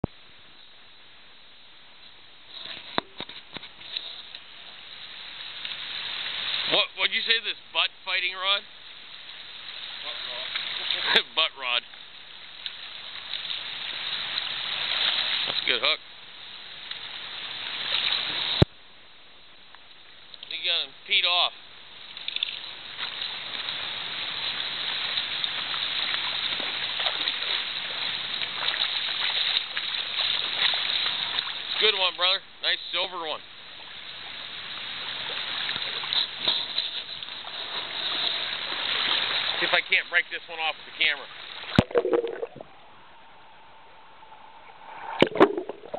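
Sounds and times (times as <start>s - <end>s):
creek water rushing: 3.8s - 8.0s, 8.6s - 18.6s, 20.0s - 36.5s, 37.1s - 43.8s.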